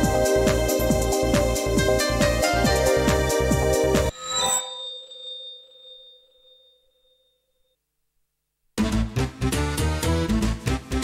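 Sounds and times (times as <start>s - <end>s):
background music: 0.0s - 4.2s, 8.8s - 11.0s
bell-like chime: 3.8s - 7.8s.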